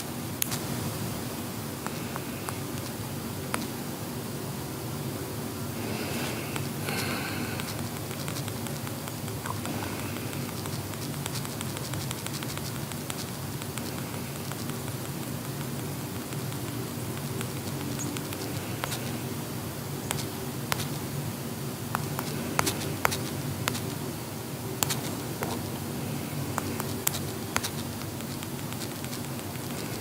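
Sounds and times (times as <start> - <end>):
room hum and hiss: 0.0 - 30.0.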